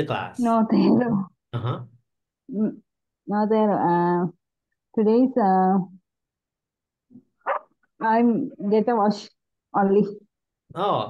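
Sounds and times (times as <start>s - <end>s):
dog barking: 7.5s - 7.7s.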